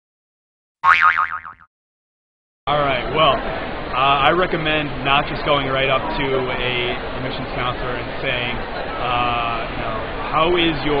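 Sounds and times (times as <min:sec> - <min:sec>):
cartoon boing: 0:00.8 - 0:01.7.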